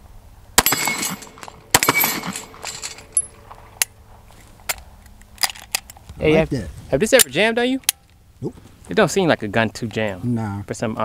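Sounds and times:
pistol shots with echo: 0.6 - 2.7.

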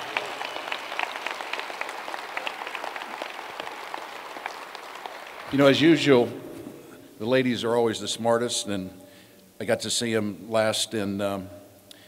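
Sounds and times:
audience applauding: 0.0 - 6.2.

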